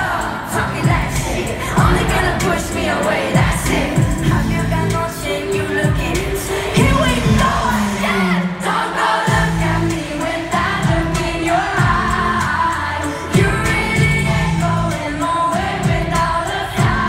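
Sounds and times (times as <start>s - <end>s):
live pop song over loudspeakers: 0.0s - 17.0s
deep bass hits: 0.8s - 2.8s, 3.4s - 5.0s, 6.8s - 7.9s, 10.6s - 12.5s, 13.4s - 15.0s.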